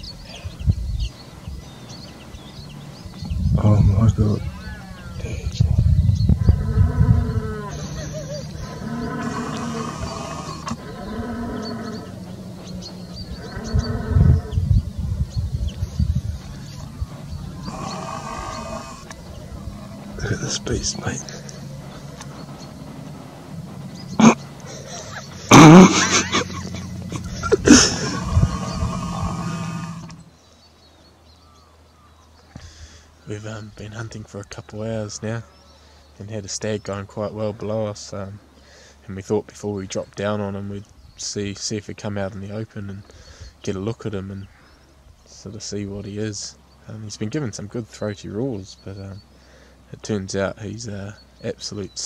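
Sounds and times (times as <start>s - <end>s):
microphone rumbling: 0.0s - 30.3s
stags roaring: 1.3s - 30.3s.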